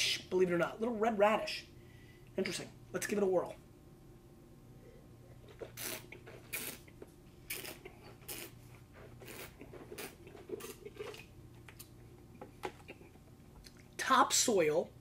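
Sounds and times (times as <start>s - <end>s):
wet slurping and swishing: 5.4s - 11.3s.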